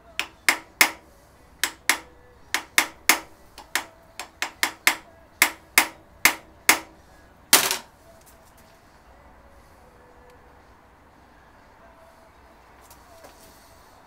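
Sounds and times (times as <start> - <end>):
hammer tapping screwdriver: 0.2 - 1.0, 1.6 - 6.9.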